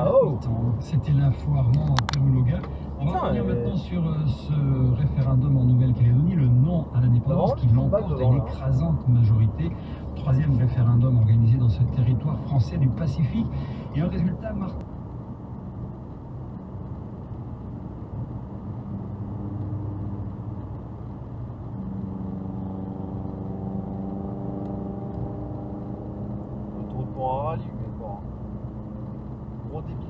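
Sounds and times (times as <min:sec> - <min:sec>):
car road and engine noise: 0:00.0 - 0:30.0
person speaking: 0:03.0 - 0:03.9.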